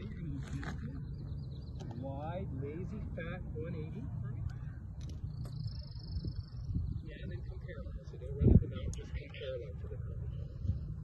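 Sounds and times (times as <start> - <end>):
wind rumbling on microphone: 3.9 - 11.0.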